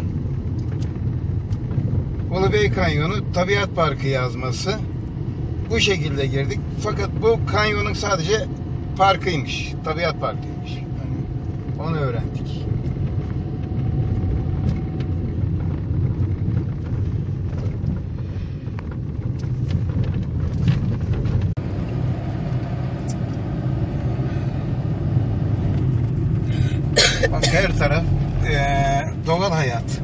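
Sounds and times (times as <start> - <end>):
car engine and tyre rumble: 0.0 - 30.0.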